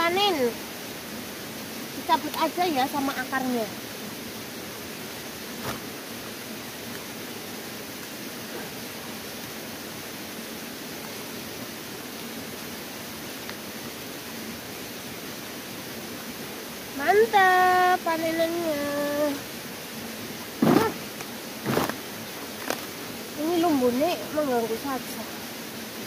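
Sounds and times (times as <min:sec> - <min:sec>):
steady outdoor hiss: 0:00.0 - 0:26.0.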